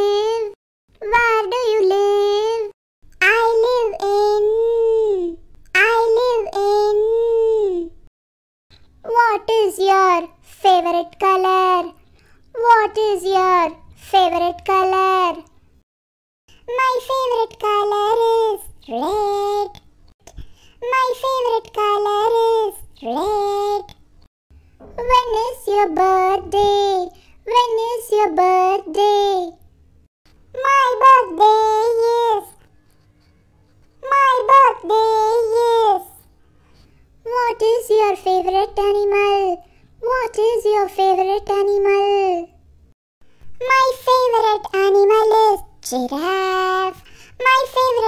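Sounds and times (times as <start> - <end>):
child singing: 0.0 - 7.9, 9.1 - 12.0, 12.6 - 15.5, 16.7 - 19.8, 20.8 - 24.0, 25.0 - 29.6, 30.6 - 32.6, 34.0 - 36.3, 37.3 - 42.5, 43.6 - 48.0.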